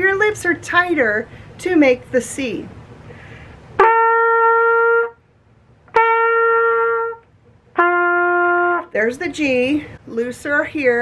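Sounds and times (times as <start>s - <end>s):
trumpet playing held notes: 3.8s - 5.2s, 5.9s - 9.0s.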